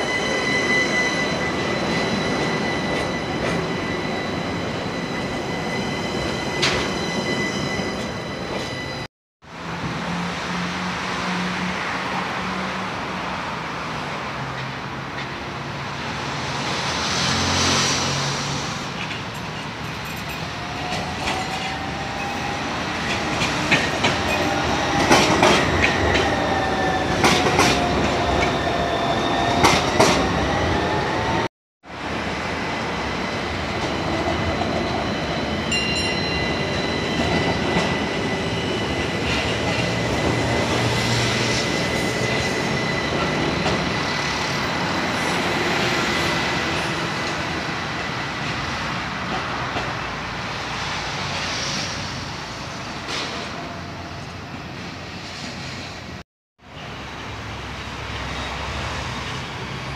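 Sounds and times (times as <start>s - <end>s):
tram wheels squealing: 0.0s - 9.1s, 16.7s - 31.5s, 32.2s - 56.1s, 56.8s - 59.9s
tram passing with high whine: 0.0s - 59.9s.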